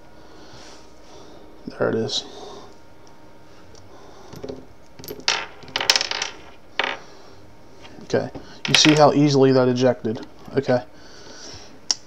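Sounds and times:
cartridges clinking onto a desk: 4.4 - 7.0.

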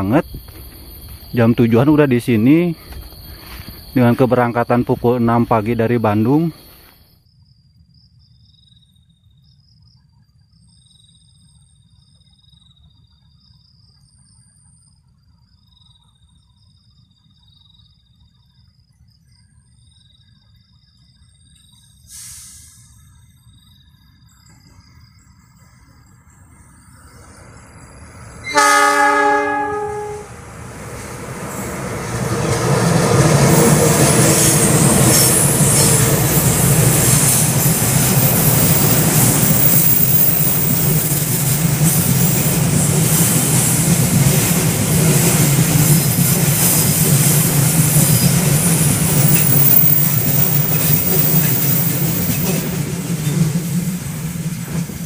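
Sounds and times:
train wheels on rails: 0.0 - 7.2, 24.4 - 55.0
insects trilling: 0.0 - 55.0
locomotive engine: 27.1 - 55.0
locomotive horn: 28.4 - 30.5.

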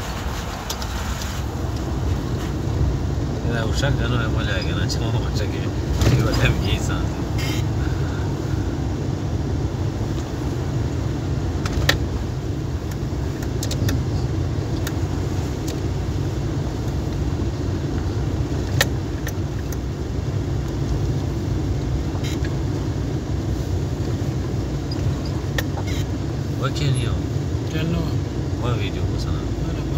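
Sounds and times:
vehicle engine and tyres rumbling: 0.0 - 29.9
sharp clicks and knocks: 12.9 - 14.1, 18.6 - 19.8.

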